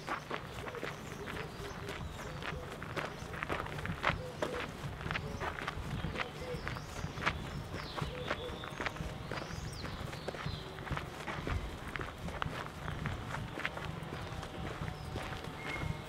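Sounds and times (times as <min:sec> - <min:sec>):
footsteps on gravel: 0:00.0 - 0:16.0
faint bird chirps: 0:04.1 - 0:10.9.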